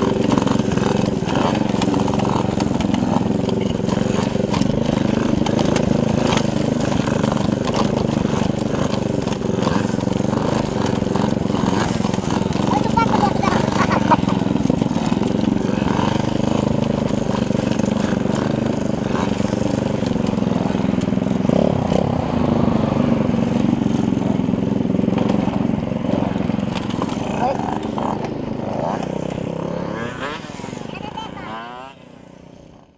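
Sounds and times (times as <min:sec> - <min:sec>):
minibike engine running: 0:00.0 - 0:32.9.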